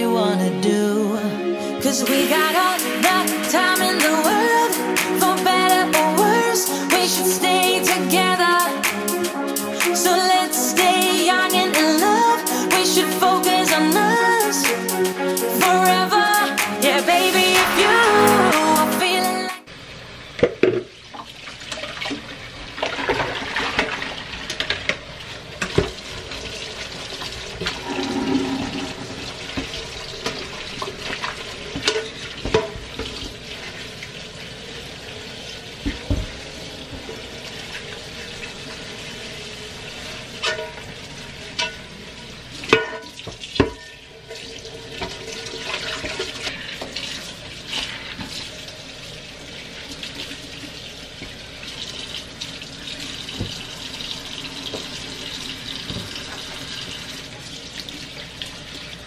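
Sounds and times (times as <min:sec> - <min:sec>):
tap running into metal sink: 0:31.7 - 0:33.3, 0:35.8 - 0:37.2, 0:53.3 - 0:53.7
pan knocking against sink: 0:31.8 - 0:33.2.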